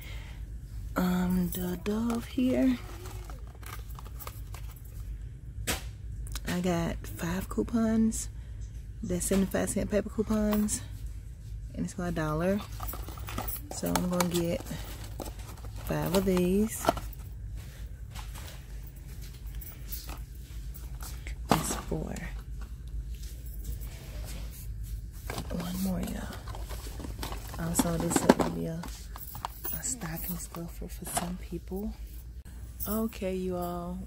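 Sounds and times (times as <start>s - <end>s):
steady low hum: 0.0s - 34.0s
cardboard boxes being handled: 12.8s - 17.2s.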